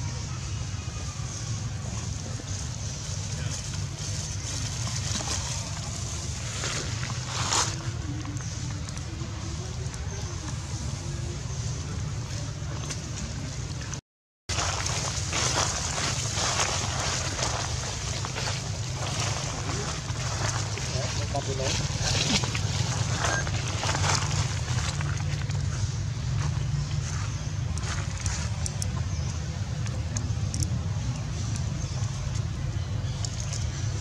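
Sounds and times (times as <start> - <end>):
distant voices: 0.0 - 34.0.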